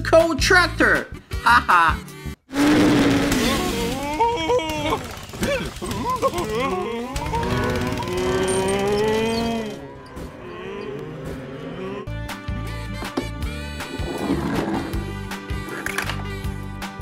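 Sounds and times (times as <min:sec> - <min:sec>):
cartoon mooing calls: 0:02.5 - 0:12.2
background film music: 0:07.3 - 0:17.0.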